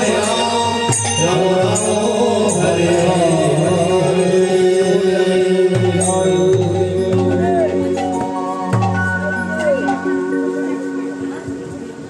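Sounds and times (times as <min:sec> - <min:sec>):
man singing devotional chant: 0:00.0 - 0:08.1
hand drum strokes: 0:05.7 - 0:12.0.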